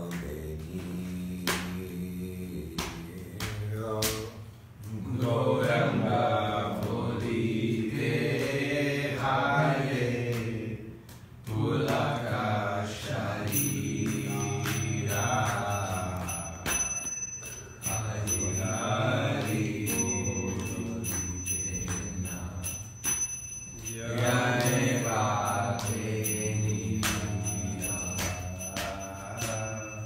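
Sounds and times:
man chanting prayers: 0.0s - 10.9s, 11.8s - 23.2s, 23.8s - 30.0s
thin high ringing: 13.1s - 30.0s.

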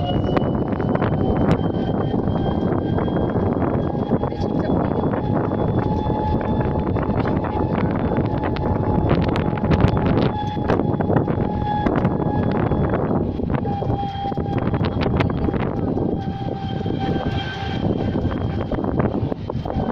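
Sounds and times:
high whine from cart: 0.0s - 19.9s
wind rumbling on microphone: 0.0s - 19.9s.

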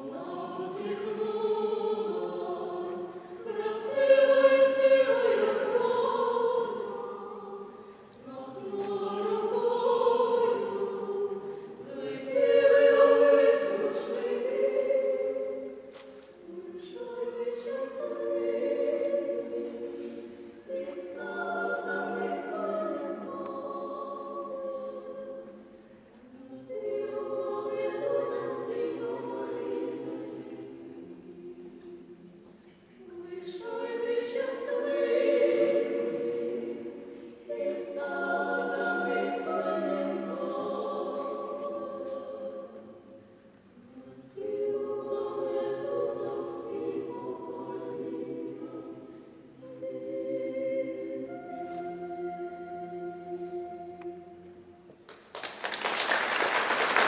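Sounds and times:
choir singing a cappella: 0.0s - 57.0s.

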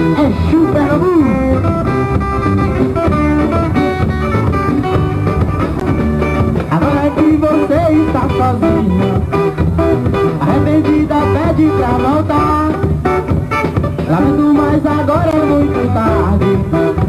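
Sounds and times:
bass and drums: 0.0s - 17.0s
electric guitars: 0.0s - 17.0s.

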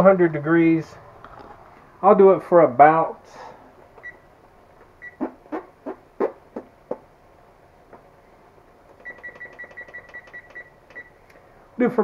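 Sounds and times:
short high-pitched beeps: 9.0s - 11.1s.

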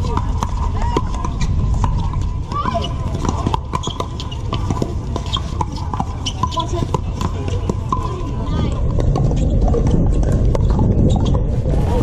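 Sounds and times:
ball bouncing on hard court: 0.0s - 11.5s
players' voices: 0.0s - 12.0s.

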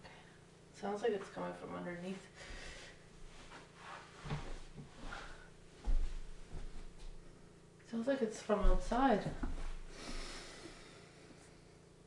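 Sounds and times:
faint heater hum: 0.0s - 12.0s.

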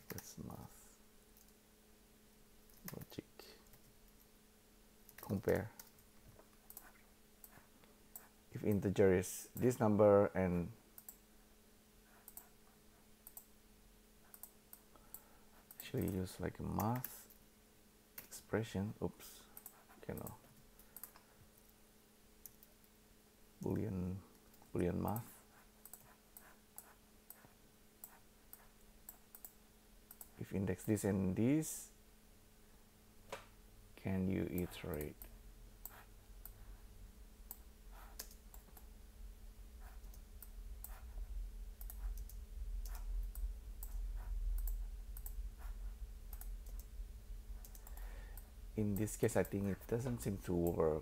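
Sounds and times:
faint steady hum: 0.0s - 51.0s
computer mouse clicks: 5.1s - 8.9s, 12.2s - 12.5s, 13.2s - 13.5s, 14.3s - 16.2s, 16.8s - 17.4s, 19.6s - 21.3s, 25.8s - 31.0s, 34.5s - 36.6s, 37.5s - 38.9s, 39.8s - 41.2s, 41.8s - 46.9s, 47.6s - 50.8s.

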